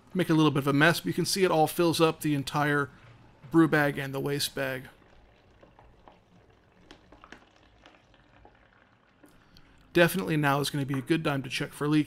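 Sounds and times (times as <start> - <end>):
water trickling into plastic tub: 2.5 - 11.3.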